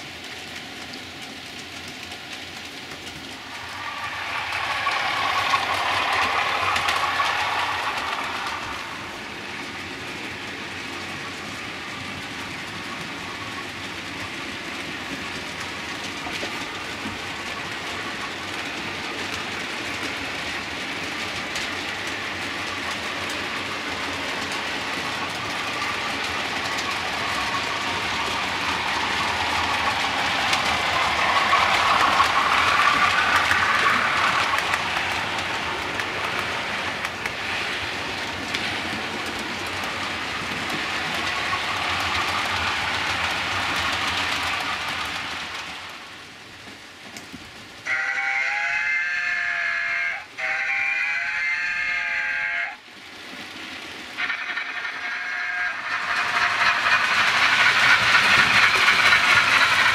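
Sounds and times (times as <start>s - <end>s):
model trains running on track: 0.0s - 59.9s.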